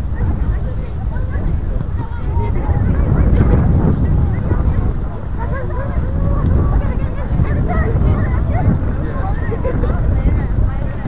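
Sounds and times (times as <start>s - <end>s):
distant shouts and calls: 0.0s - 11.0s
wind buffeting microphone: 0.0s - 11.0s.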